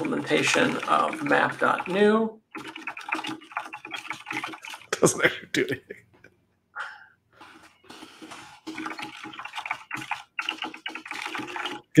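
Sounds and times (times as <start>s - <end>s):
fast typing on keyboard: 0.0s - 5.0s, 8.2s - 12.0s.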